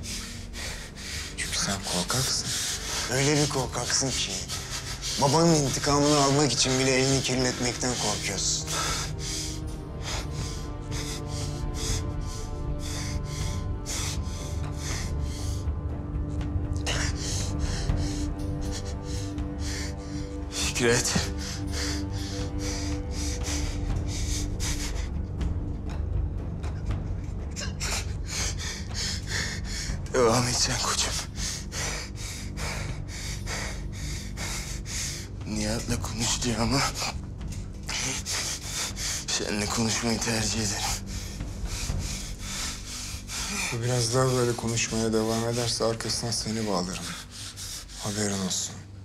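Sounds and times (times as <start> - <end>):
man breathing heavily: 0.0 - 30.1, 31.0 - 35.4, 36.7 - 48.4
sustained low music notes: 0.0 - 49.0.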